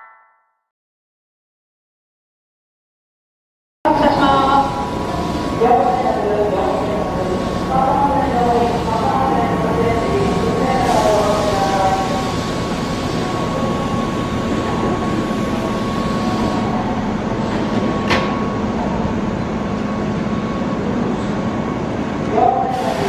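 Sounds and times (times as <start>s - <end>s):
high single tone: 0.0s - 0.7s
electric train equipment humming: 3.9s - 23.0s.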